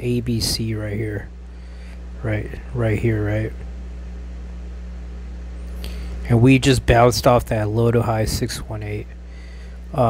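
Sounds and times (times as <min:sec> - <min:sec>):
faint background hiss: 0:00.0 - 0:10.0
steady low hum: 0:00.0 - 0:10.0.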